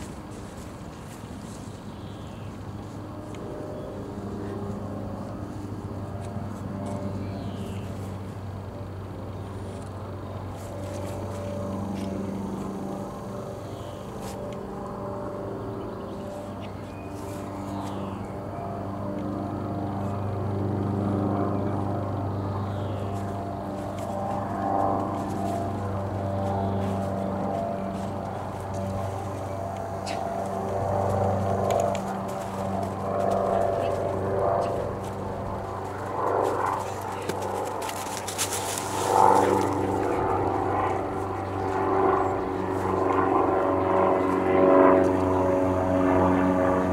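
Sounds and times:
low engine drone: 0:00.0 - 0:46.9.

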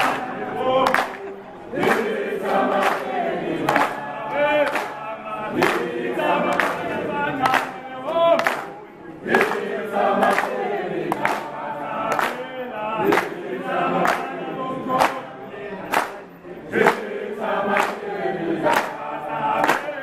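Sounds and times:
crowd singing in unison: 0:00.0 - 0:20.0
sharp claps in time: 0:00.0 - 0:20.0.

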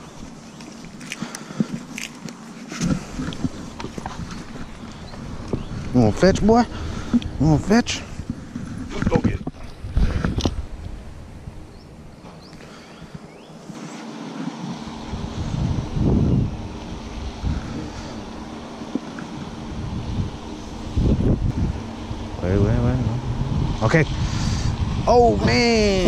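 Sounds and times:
wind rumbling on microphone: 0:00.0 - 0:13.5, 0:14.6 - 0:26.0.

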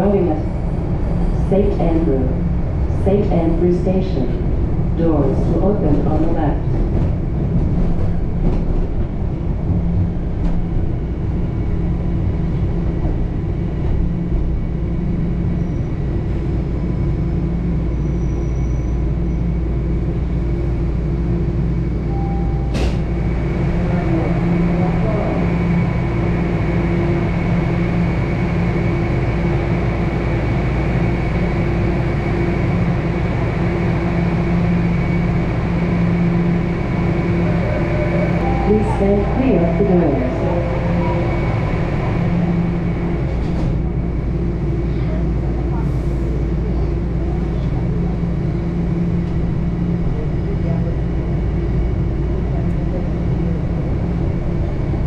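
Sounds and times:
subway car rumble and hum: 0:00.0 - 0:55.0
faint high tone: 0:37.4 - 0:41.4.

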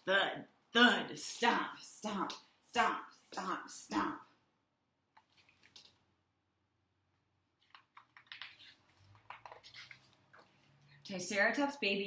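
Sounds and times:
book pages rustling: 0:07.6 - 0:10.8.

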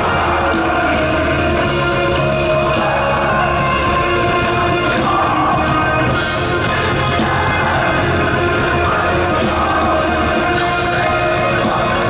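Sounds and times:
person singing: 0:00.0 - 0:12.0
rock band playing: 0:00.0 - 0:12.0.

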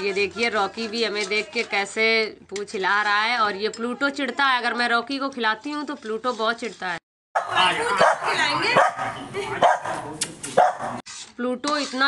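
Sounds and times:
dog barking sharply: 0:07.4 - 0:10.0, 0:10.6 - 0:11.0.

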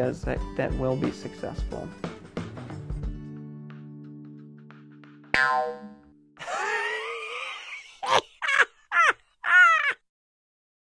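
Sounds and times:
wobbling warbling tone: 0:05.4 - 0:06.1.

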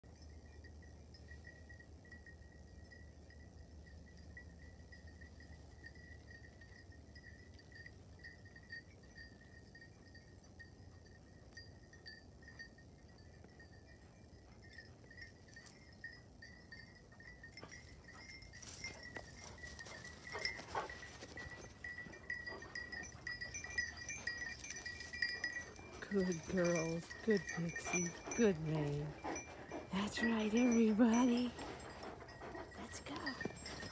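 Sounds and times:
collar bells jingling: 0:00.0 - 0:33.9.

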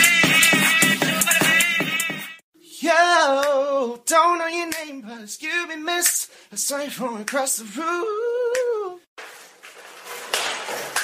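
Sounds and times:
clatter and scrape on tiled floor: 0:09.2 - 0:11.0.

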